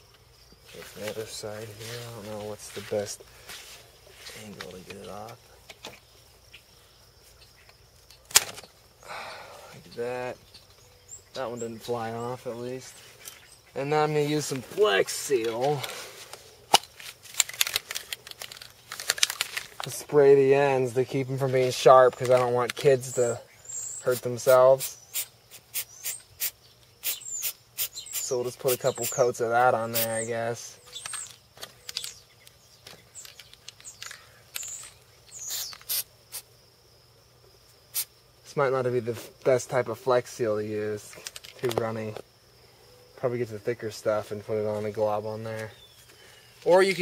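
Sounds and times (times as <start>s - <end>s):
insects chirring: 0.0s - 47.0s
aerosol can spraying hisses: 24.1s - 28.3s, 35.4s - 36.4s.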